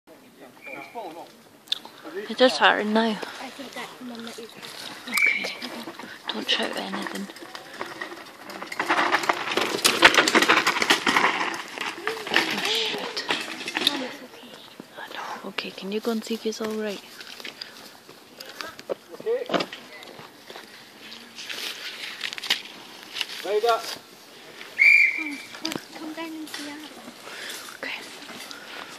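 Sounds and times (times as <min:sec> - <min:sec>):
high-pitched whistle note: 0:00.6 - 0:01.0, 0:24.8 - 0:25.5
mountain bike clattering over bumps: 0:02.9 - 0:14.6.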